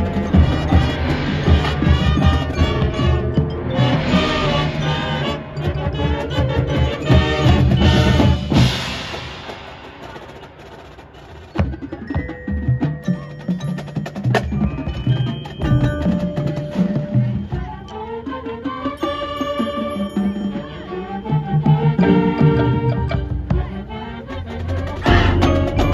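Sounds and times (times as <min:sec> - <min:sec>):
low held notes: 0:00.0 - 0:10.6
struck percussion: 0:00.0 - 0:17.9, 0:20.0 - 0:25.9
marching band playing: 0:00.0 - 0:25.9
ringing mallet percussion notes: 0:00.0 - 0:25.9.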